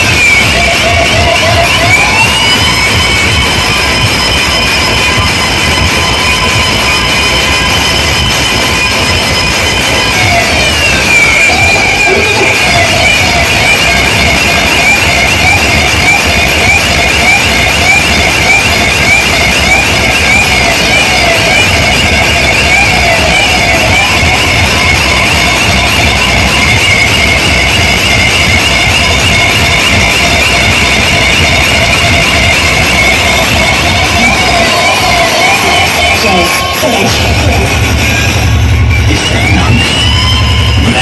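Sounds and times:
heavy bass: 0.0s - 41.0s
warbling siren-like electronic tone: 0.0s - 41.0s.

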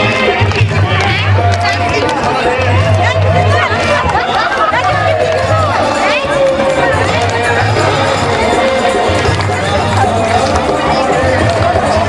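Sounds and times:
chatter: 0.0s - 12.0s
crowd singing a chant: 0.0s - 12.0s.

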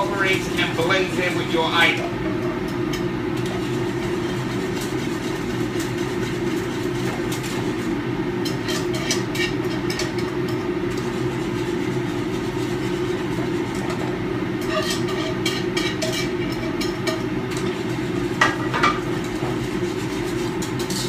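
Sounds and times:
exhaust fan low rumble: 0.0s - 21.0s
whisk clicking against metal pan: 8.4s - 21.0s.

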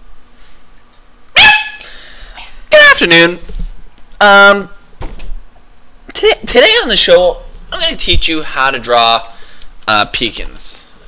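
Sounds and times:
small dog barking: 1.4s - 1.8s.

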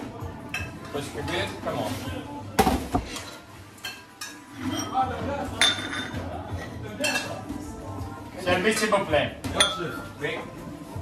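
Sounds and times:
kitchen clatter of pans and bowls: 2.6s - 7.6s, 8.6s - 10.1s.

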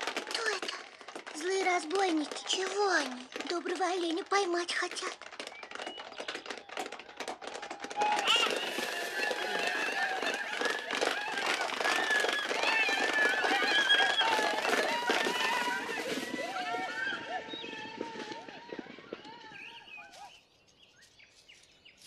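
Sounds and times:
horses galloping: 0.0s - 20.2s
people shouting and whooping: 6.5s - 20.3s.

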